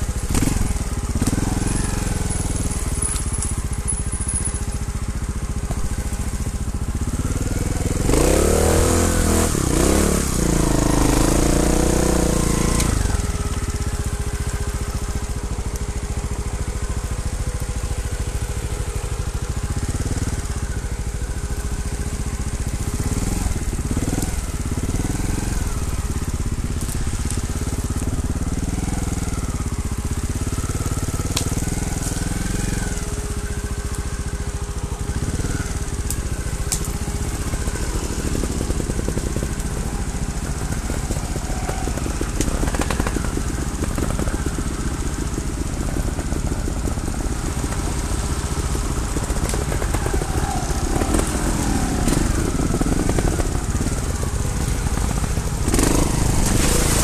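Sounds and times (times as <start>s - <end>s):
motorcycle engine running: 0.0s - 57.0s.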